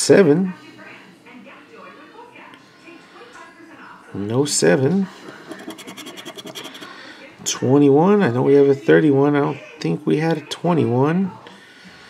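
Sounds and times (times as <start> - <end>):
scraper scratching lottery ticket: 5.2 - 7.0.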